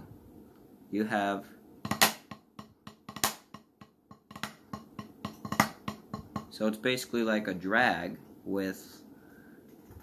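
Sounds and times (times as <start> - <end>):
drumsticks tapping practice pad: 1.8 - 6.6.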